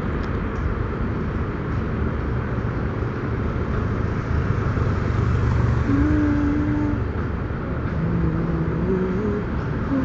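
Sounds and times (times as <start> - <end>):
street traffic passing: 0.0 - 10.0.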